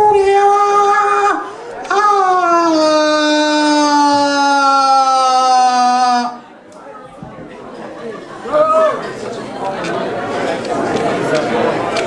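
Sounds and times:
audience murmuring: 5.7 - 12.0.

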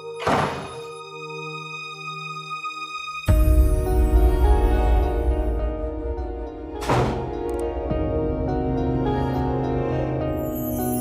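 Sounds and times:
slow ambient music: 0.0 - 11.0
sudden thud: 0.2 - 0.8, 6.8 - 7.4.

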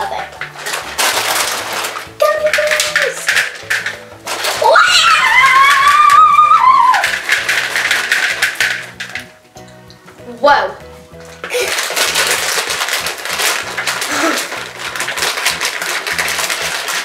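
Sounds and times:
girl squealing: 4.6 - 7.0.

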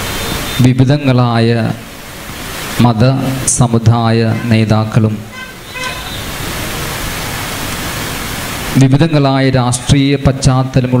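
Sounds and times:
steady hiss: 0.0 - 11.0
man talking into a microphone: 0.6 - 1.8, 2.8 - 5.3, 8.7 - 11.0.

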